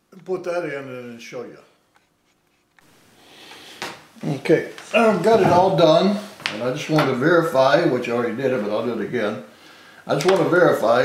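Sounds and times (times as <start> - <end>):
man speaking: 0.1 - 1.8, 4.2 - 11.0
man drawing breath: 3.1 - 4.0, 9.5 - 10.1.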